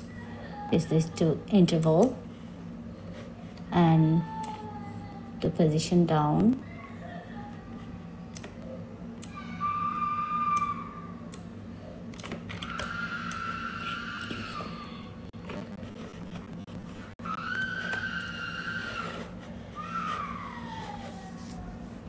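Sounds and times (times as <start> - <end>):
siren wailing: 9.2 - 11.2, 12.6 - 15.2, 17.2 - 20.9.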